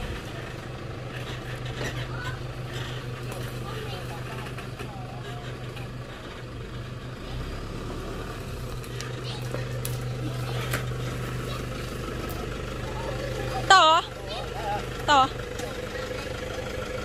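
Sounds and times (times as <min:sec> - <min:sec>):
pickup engine running: 0:00.0 - 0:17.0.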